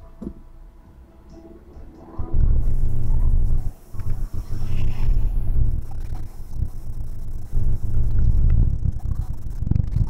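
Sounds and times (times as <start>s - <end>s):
low rumble inside moving car: 1.4s - 10.0s.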